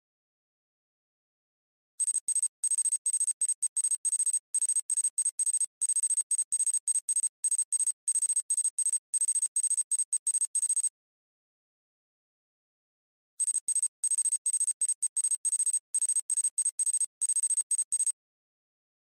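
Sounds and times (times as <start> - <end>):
high-pitched electronic typing beeps: 2.0 - 10.9, 13.4 - 18.2.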